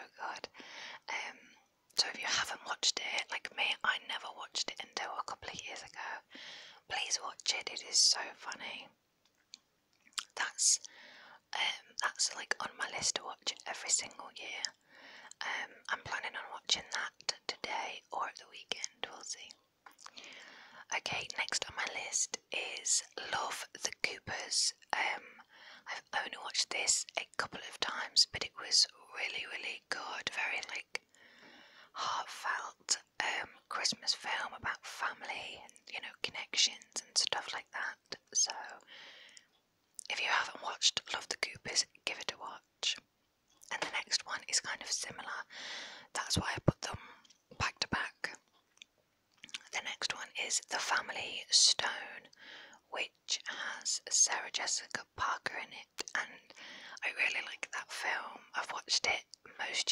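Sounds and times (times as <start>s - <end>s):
woman whispering: 0.0s - 9.0s, 10.2s - 31.0s, 31.9s - 38.9s, 40.0s - 43.0s, 43.6s - 48.4s, 49.5s - 59.9s
small sharp mouth clicks: 9.4s - 10.4s, 19.8s - 20.3s, 48.7s - 49.7s.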